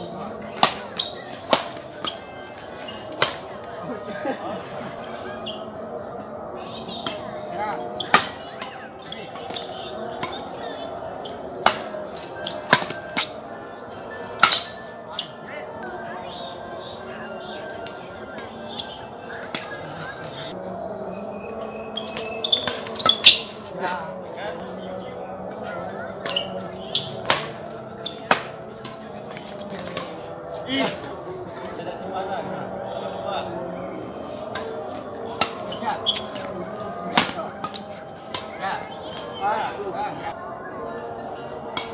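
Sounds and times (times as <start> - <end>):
crickets chirping: 0.0 - 41.9
rackets hitting shuttlecock: 0.5 - 3.8, 6.8 - 15.4, 22.0 - 23.6, 26.2 - 31.2, 34.5 - 36.5, 37.1 - 39.3.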